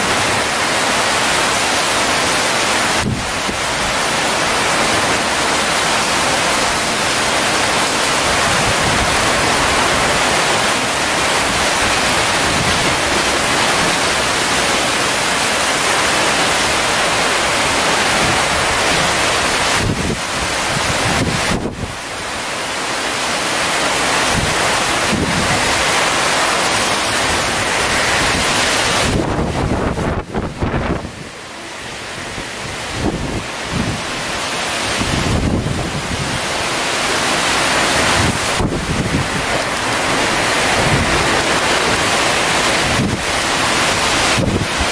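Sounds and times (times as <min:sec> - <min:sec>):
gusts buffeting microphone: 0:00.0 - 0:22.3, 0:23.8 - 0:44.9
driving rain: 0:00.0 - 0:44.9
typhoon wind: 0:00.0 - 0:44.9.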